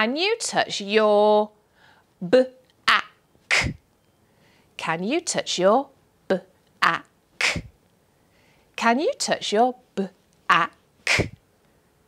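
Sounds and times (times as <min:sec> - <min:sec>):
woman sounding out a word: 0:02.9 - 0:03.8, 0:06.3 - 0:07.7, 0:10.0 - 0:11.4.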